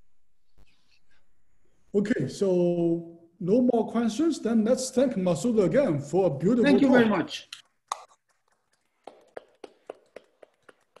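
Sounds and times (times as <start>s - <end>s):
hand claps: 7.5s - 11.0s.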